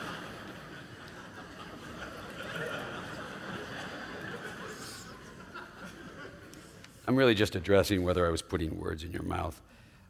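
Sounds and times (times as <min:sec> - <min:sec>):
audience laughing: 0:00.0 - 0:07.0.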